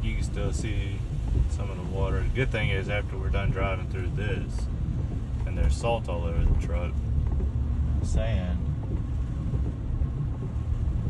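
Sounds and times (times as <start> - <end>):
truck driving on wet road: 0.0 - 11.0.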